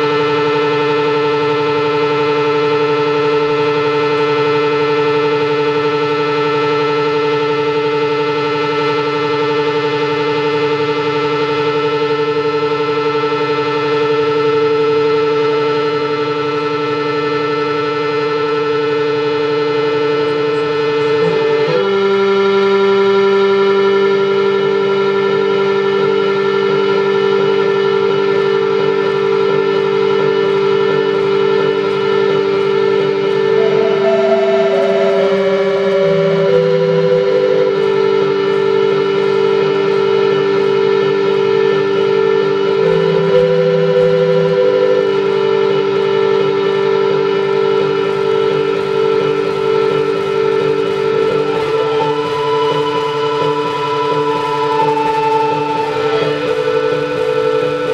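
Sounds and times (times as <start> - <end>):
sustained synthesizer drone: 0.0 - 57.9.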